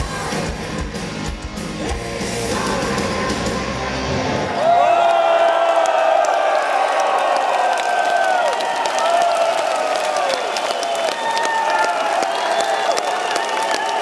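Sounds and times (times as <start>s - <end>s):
crowd cheering and clapping: 2.6s - 14.0s
crowd shouting: 4.0s - 14.0s.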